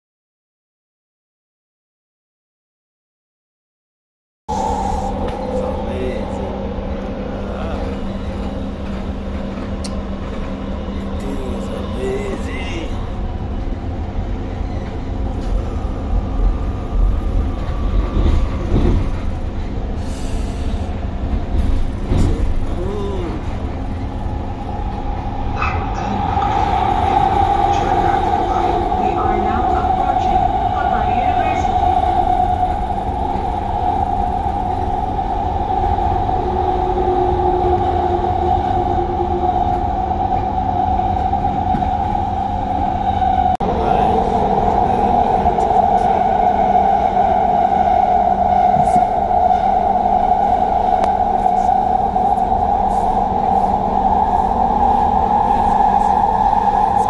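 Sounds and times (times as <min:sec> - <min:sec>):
constant train hum: 0:04.5 - 0:57.0
train low rumble: 0:04.5 - 0:57.0.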